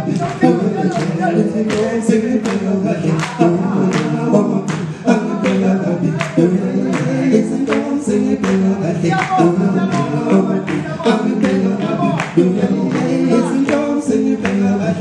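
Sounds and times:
male group singing in chorus: 0:00.0 - 0:15.0
sharp hand claps: 0:00.1 - 0:02.6, 0:03.2 - 0:05.6, 0:06.2 - 0:10.1.

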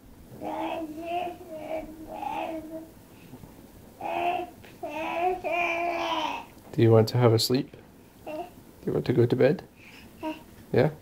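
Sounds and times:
toddler sing-song voice: 0:00.4 - 0:03.0, 0:04.0 - 0:06.5, 0:08.2 - 0:08.6, 0:10.2 - 0:10.5.

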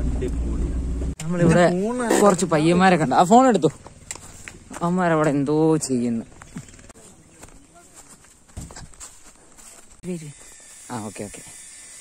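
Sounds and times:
footsteps on grass: 0:03.0 - 0:10.6.

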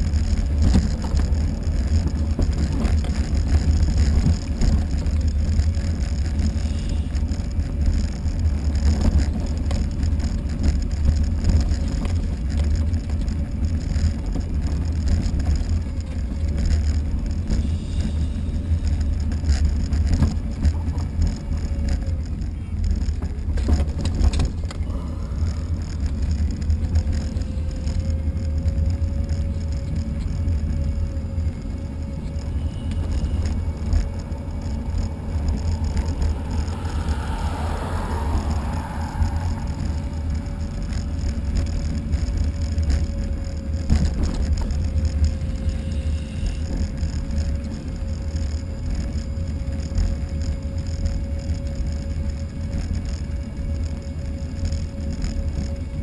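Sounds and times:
thin steady whine: 0:00.0 - 0:56.0
wind rumbling on microphone: 0:00.0 - 0:56.0.

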